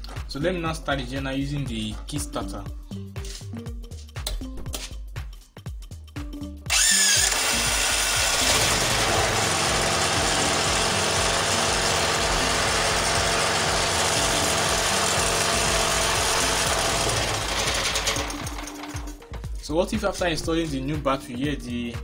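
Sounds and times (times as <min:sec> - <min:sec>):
generator engine running: 0:06.7 - 0:19.3.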